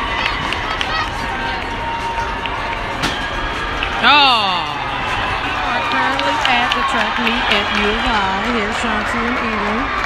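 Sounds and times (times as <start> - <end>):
crowd hubbub: 0.0 - 10.0.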